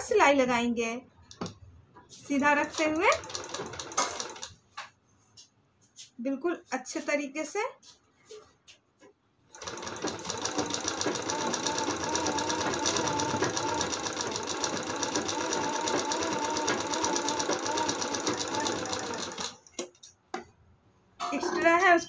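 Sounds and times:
sewing machine stitching: 0:02.2 - 0:04.6, 0:09.5 - 0:20.1.

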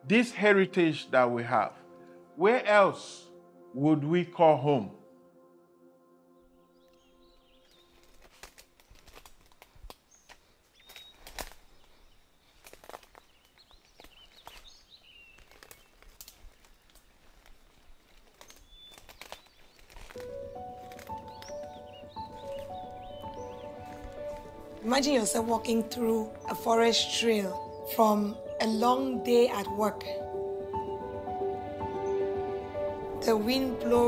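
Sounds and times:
soft music of held chords: 0:00.0 - 0:09.7, 0:19.2 - 0:34.0
footsteps on leaf litter: 0:07.6 - 0:27.8
twigs snapping: 0:07.6 - 0:27.8
bird chirps: 0:10.1 - 0:17.2, 0:18.3 - 0:30.0.

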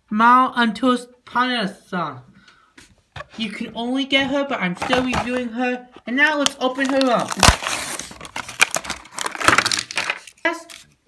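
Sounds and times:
plastic packaging tearing and crinkling: 0:06.4 - 0:11.0.

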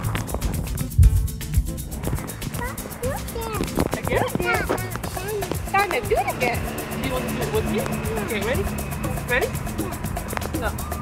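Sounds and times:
background music with beat: 0:00.0 - 0:11.0
loud low thump: 0:00.8 - 0:02.6
young child babbling: 0:02.5 - 0:03.9, 0:04.5 - 0:05.6.

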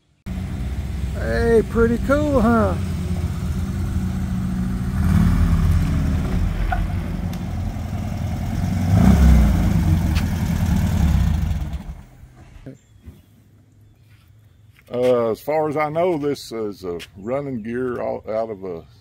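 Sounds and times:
dune buggy engine running: 0:00.3 - 0:12.6.

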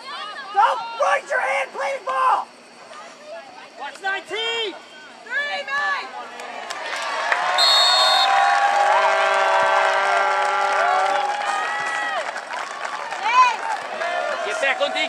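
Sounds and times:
crowd cheering and yelling: 0:05.4 - 0:15.0
shrill whistle: 0:07.6 - 0:08.4.

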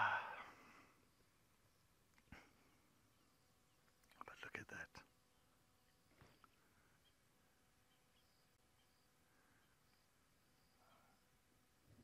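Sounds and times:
faint whisper: 0:00.0 - 0:01.0, 0:04.1 - 0:05.1, 0:10.8 - 0:11.3.

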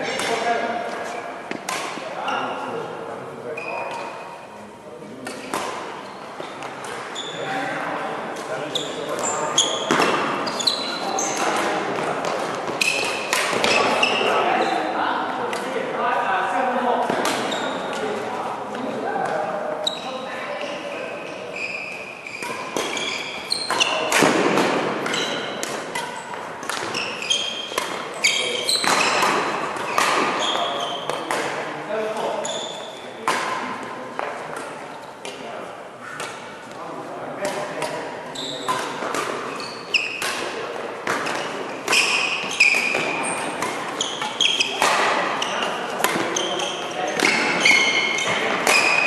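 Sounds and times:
voices in echoing hall: 0:00.0 - 0:49.0
shoes squeaking on court: 0:03.5 - 0:04.6, 0:05.2 - 0:07.7, 0:08.3 - 0:15.8, 0:17.1 - 0:18.3, 0:19.2 - 0:33.6, 0:37.5 - 0:49.0
rackets striking shuttlecock: 0:08.4 - 0:14.3, 0:21.9 - 0:32.4, 0:37.4 - 0:49.0.

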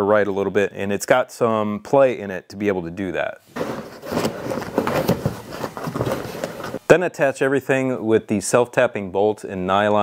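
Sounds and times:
plastic sleeve crinkling: 0:03.5 - 0:06.8.

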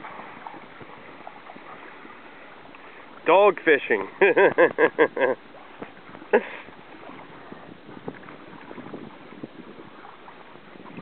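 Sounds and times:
lapping water: 0:03.8 - 0:11.0
wind on microphone: 0:05.1 - 0:11.0.

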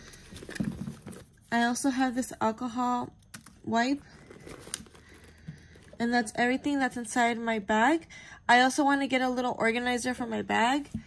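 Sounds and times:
handbag rustling: 0:04.0 - 0:06.4.

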